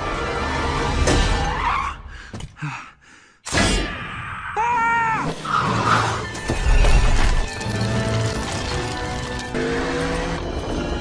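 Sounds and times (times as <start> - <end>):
background music: 0.0 - 2.2, 5.3 - 11.0
clattering debris: 6.3 - 9.7.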